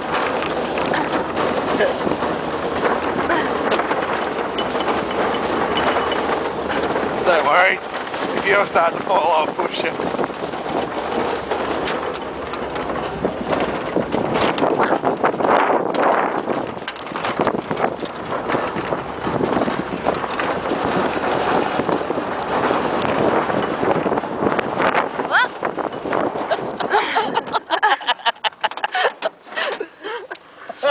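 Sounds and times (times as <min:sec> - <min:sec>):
vehicle rattling and knocking: 0:00.0 - 0:30.9
voices: 0:07.2 - 0:10.0.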